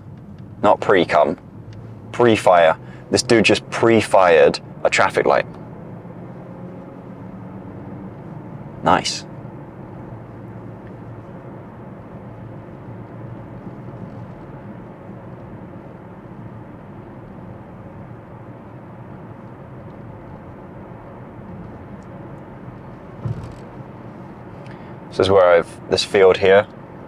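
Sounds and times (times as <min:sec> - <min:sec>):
car engine: 0:00.0 - 0:27.0
road noise inside car: 0:00.0 - 0:27.0.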